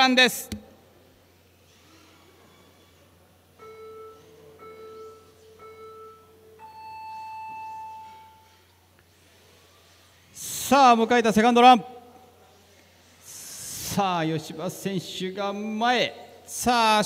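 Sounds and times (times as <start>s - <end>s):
long higher beep: 3.6s - 8.6s
short low beeps: 3.6s - 8.6s.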